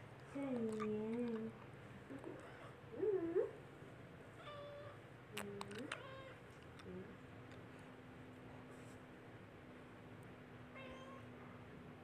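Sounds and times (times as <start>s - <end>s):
cat meowing: 10.8s - 11.3s.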